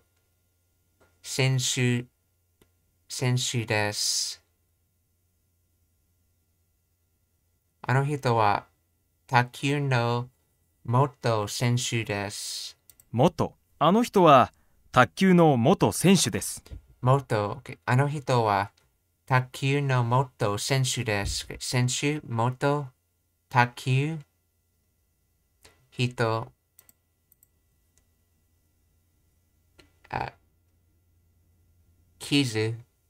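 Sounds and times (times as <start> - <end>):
person speaking: 10.9 - 18.7, 19.3 - 22.6.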